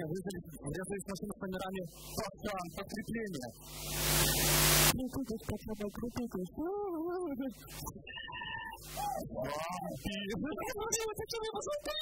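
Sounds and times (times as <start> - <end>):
men talking into microphones: 0.0 - 3.6, 9.2 - 11.9
loud hissing noise: 3.6 - 5.0.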